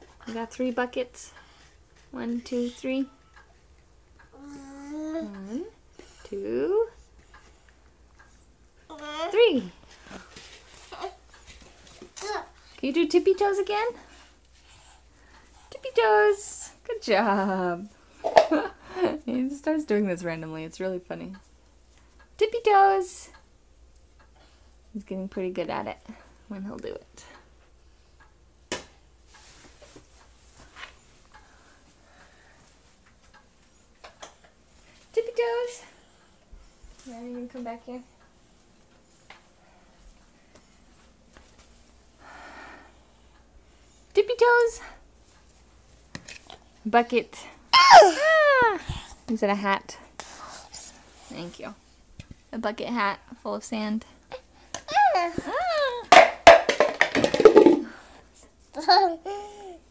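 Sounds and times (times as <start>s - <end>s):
toy bucket knocking and rattling: 56.1s - 58.0s.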